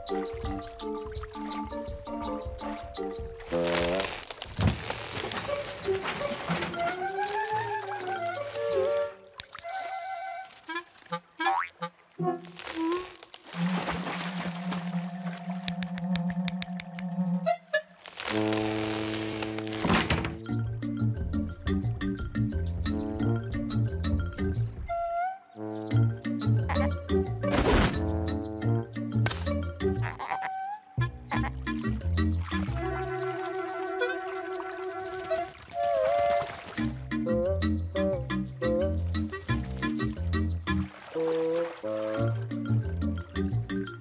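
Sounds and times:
crisp percussion ticks: 15.6 - 17.1
cartoon music and sound effects: 25.6 - 35.5
bouncing bass notes: 26.0 - 30.3.

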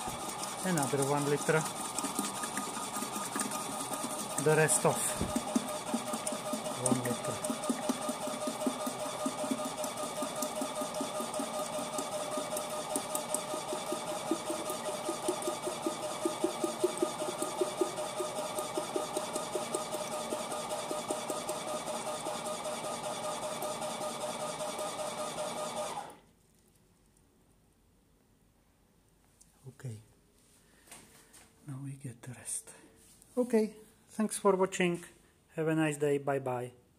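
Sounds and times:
pump humming with fast pulse: 0.0 - 26.2.

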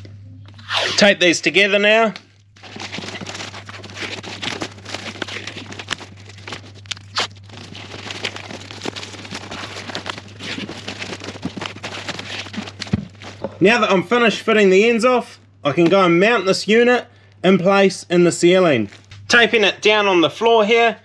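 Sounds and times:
duct tape pulled off roll: 0.5 - 1.1, 6.9 - 7.4
foil duct crinkling: 1.0 - 15.0, 18.5 - 19.5.

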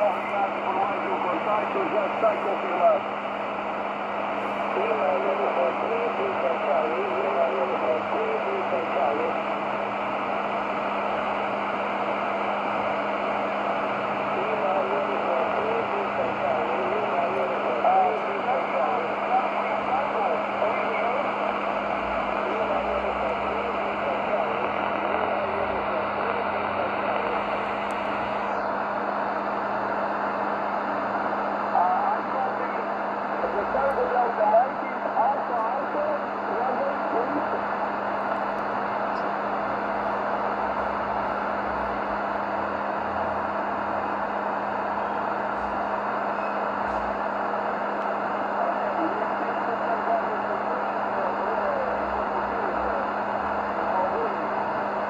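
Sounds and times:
garbled radio voice: 0.0 - 3.1, 4.4 - 9.5, 14.0 - 29.0, 31.7 - 38.1, 48.4 - 55.0
radio static hiss: 0.0 - 55.0.

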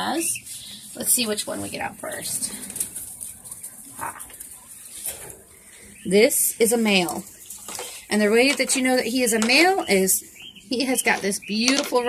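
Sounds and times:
scuffling of feathers and straw: 0.1 - 8.5.

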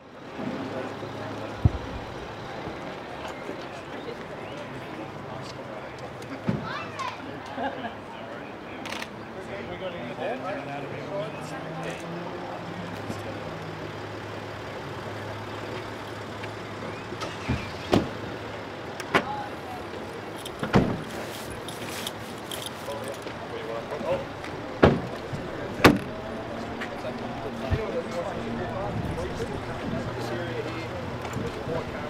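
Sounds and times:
faint voices: 0.0 - 32.0
car engine idling: 0.3 - 6.2, 11.9 - 32.0.

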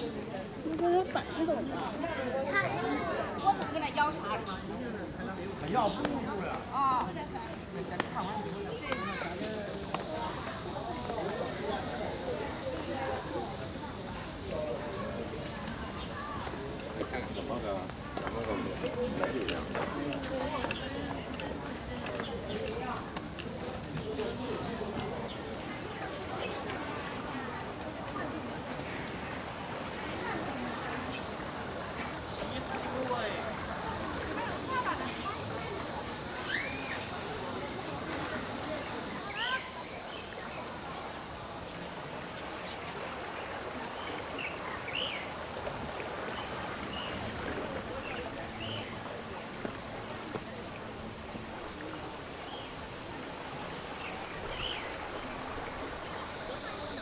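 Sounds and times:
outdoor background hiss: 0.0 - 57.0
people talking: 0.0 - 57.0
birds chirping: 47.9 - 49.2, 53.7 - 57.0.

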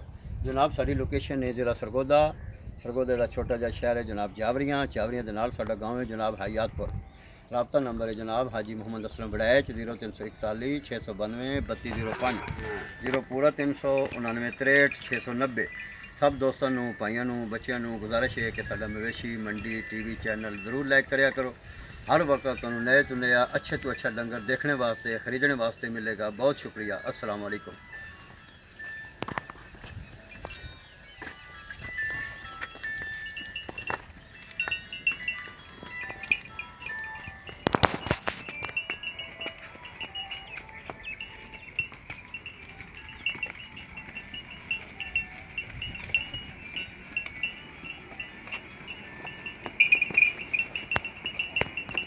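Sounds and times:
small metal bells clinking: 4.2 - 52.0.

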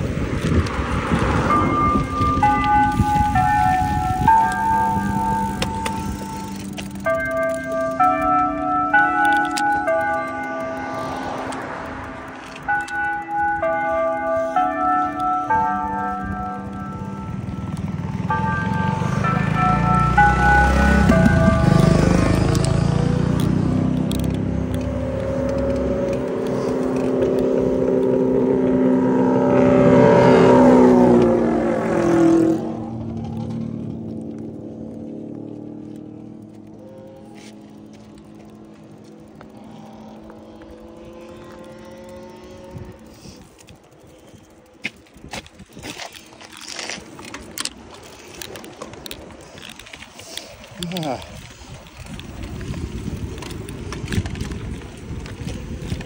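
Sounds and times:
cars passing on road: 0.0 - 56.0.

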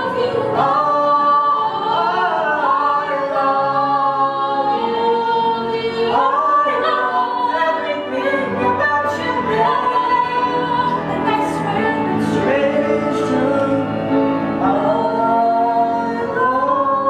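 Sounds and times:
group singing long held notes: 0.0 - 17.0.

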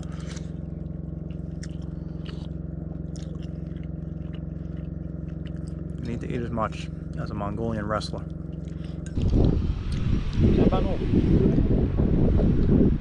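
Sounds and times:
chewing: 0.0 - 7.3, 8.2 - 9.4
low hum: 0.0 - 13.0.

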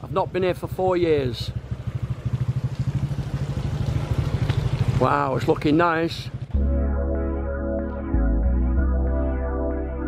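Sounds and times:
small motorcycle engine running: 0.1 - 6.6.

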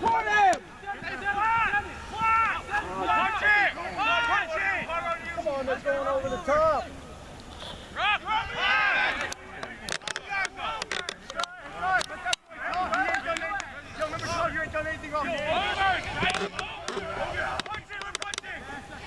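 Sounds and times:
voices shouting over one another: 0.0 - 7.0, 7.9 - 19.0
sharp clicks: 9.2 - 13.7, 16.2 - 18.5.

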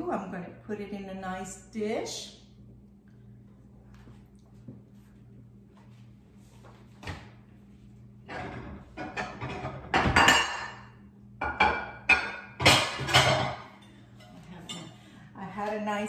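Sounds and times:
dishes clinking together: 8.4 - 15.0.

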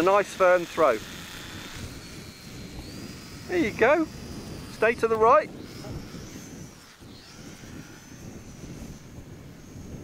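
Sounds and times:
model plane motor whine: 0.0 - 10.0
wind on microphone: 0.0 - 10.0.

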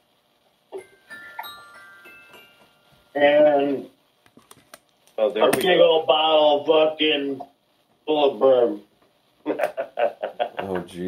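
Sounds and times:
bell-like ring: 0.8 - 3.2.

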